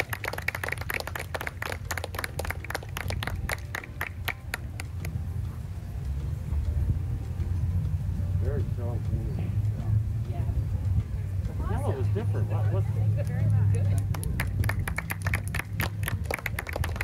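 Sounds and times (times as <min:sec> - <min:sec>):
crowd applauding: 0:00.0 - 0:05.1, 0:13.8 - 0:17.0
steady low rumble: 0:00.0 - 0:17.0.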